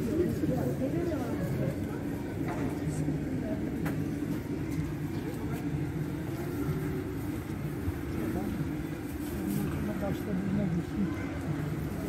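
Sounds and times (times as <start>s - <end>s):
indistinct voices of passers-by: 0.0s - 12.0s
low rumble of traffic: 0.0s - 12.0s.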